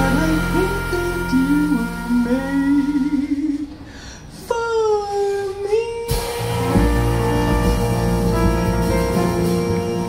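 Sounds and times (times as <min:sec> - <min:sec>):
jazz band held chord: 0:00.0 - 0:03.6, 0:06.1 - 0:10.0.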